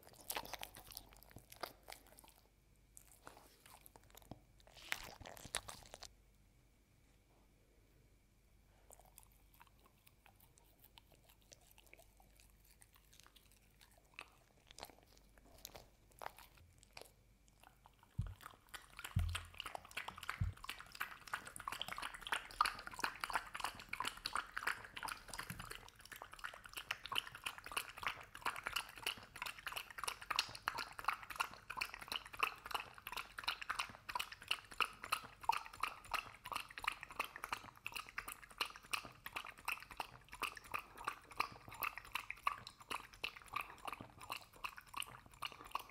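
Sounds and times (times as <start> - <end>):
dog lapping and slurping: 0.0 - 2.5, 8.9 - 45.9.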